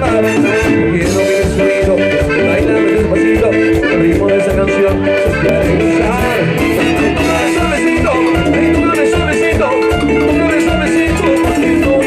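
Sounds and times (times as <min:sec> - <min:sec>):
loud live dance music: 0:00.0 - 0:12.0.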